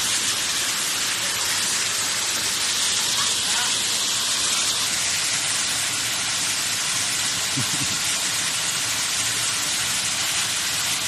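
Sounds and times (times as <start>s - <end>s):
waterfall pouring into pool: 0.0s - 11.0s.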